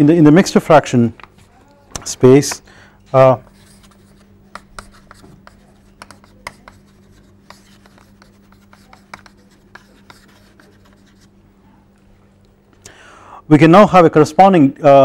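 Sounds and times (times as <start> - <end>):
chalk writing on chalkboard: 3.4 - 11.3.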